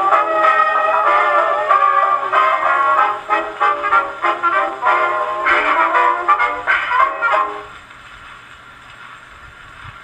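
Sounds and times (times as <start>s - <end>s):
record surface hiss and rumble: 0.0s - 10.0s.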